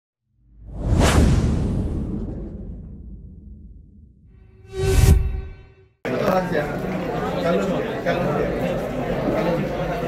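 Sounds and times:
low rumble: 0.6s - 5.8s
whoosh sound effect: 0.6s - 5.8s.

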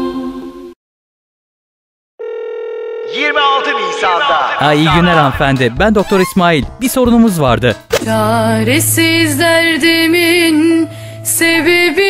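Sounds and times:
telephone dial tone: 2.2s - 3.3s.

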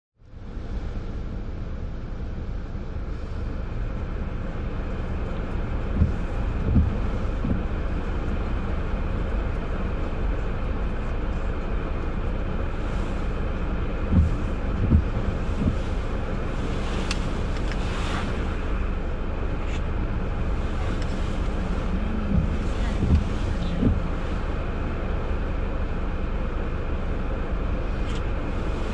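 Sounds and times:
city traffic rumble: 0.2s - 28.9s.

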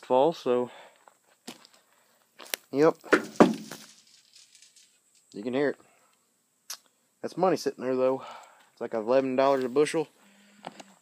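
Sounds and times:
crackle of settling beans: 0.9s - 5.4s
beans rattling against metal hopper: 3.2s - 5.0s.

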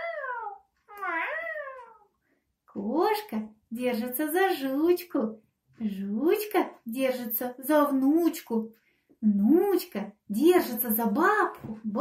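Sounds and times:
cat meowing: 0.0s - 2.1s.

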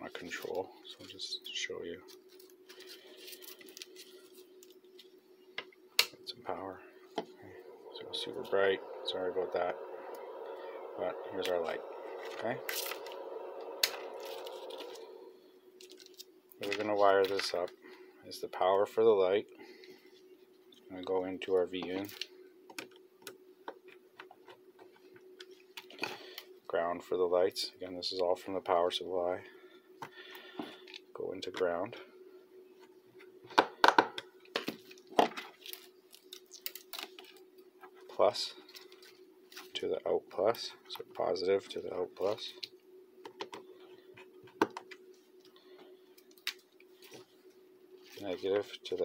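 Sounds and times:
faint hum: 0.0s - 49.0s.

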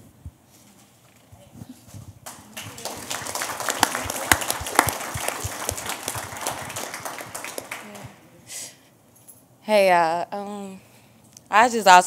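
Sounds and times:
audience applauding: 2.2s - 8.2s.

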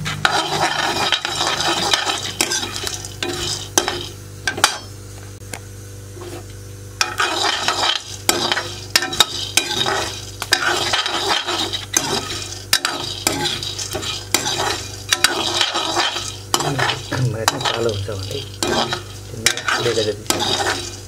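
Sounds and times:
metal spoon scraping a pan: 0.0s - 4.9s, 6.2s - 21.0s
sharp clicks of roasting kernels: 0.0s - 5.7s, 6.4s - 21.0s
light sizzle: 0.0s - 21.0s
maize kernels rattling: 7.0s - 21.0s.

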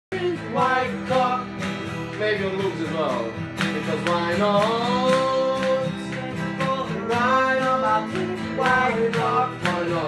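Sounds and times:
person singing: 0.1s - 1.6s, 2.2s - 10.0s
acoustic guitar music: 0.1s - 10.0s.

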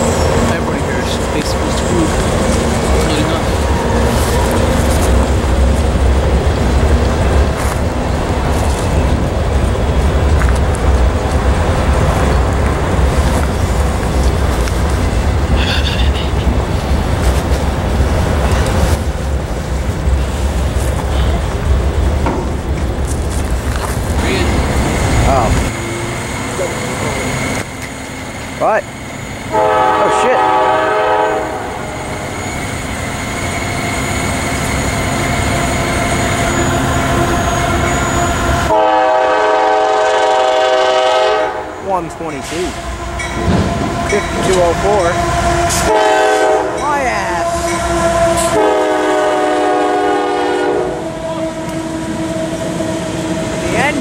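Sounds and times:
freight train rolling past: 0.0s - 54.0s
train horn blasts: 29.5s - 32.0s, 36.4s - 54.0s.

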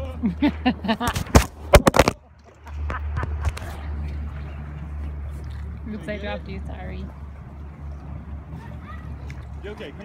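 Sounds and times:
steady low rumble: 0.0s - 10.0s
phone microphone handling noise: 1.0s - 2.2s.

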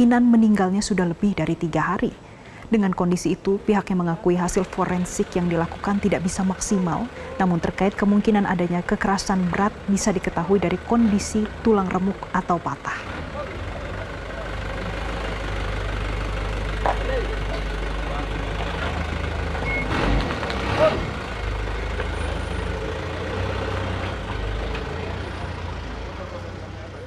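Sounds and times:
van engine rumbling: 0.0s - 27.0s
faint voices: 3.7s - 19.6s.

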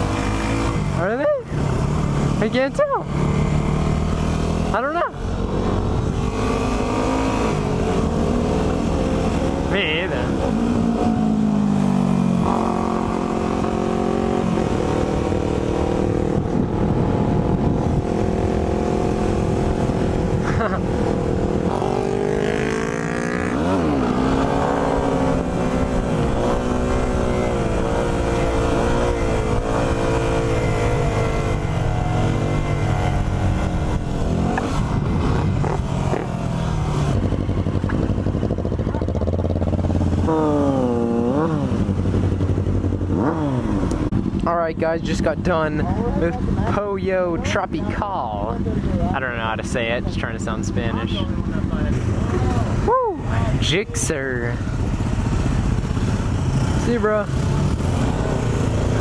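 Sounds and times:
motorcycle engine revving: 0.0s - 59.0s.

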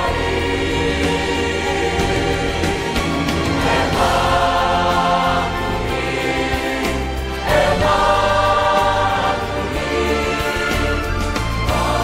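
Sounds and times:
mixed choir singing in harmony: 0.0s - 12.0s
sustained low accompaniment: 0.0s - 12.0s.

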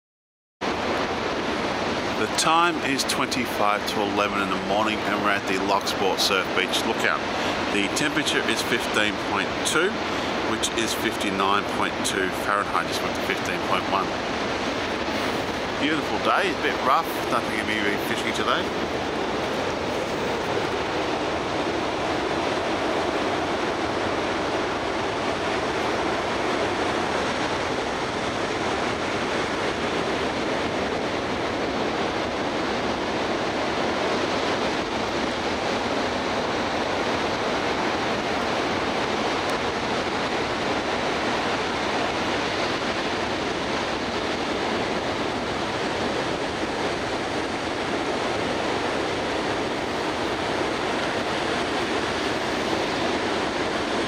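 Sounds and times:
ocean surf breaking on beach: 0.6s - 54.0s.

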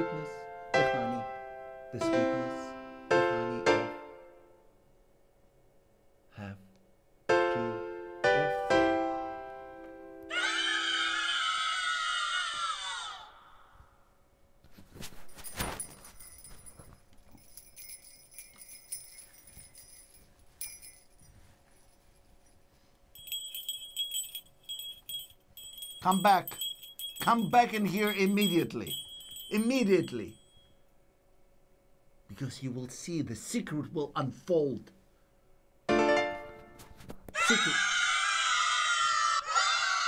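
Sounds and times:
shrill scream-like screech: 10.3s - 13.6s, 37.4s - 40.0s
small bells jingling: 15.1s - 30.8s.

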